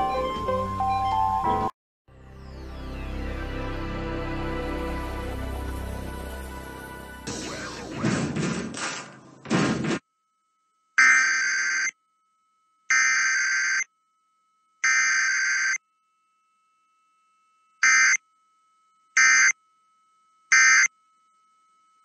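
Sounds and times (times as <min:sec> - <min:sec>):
faint steady tone: 0:13.8 - 0:22.0.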